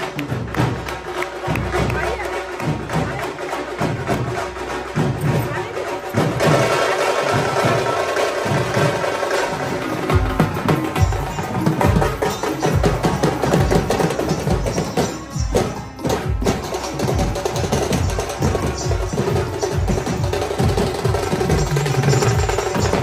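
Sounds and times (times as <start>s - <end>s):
drums beaten in fast rhythm: 0.0s - 23.0s.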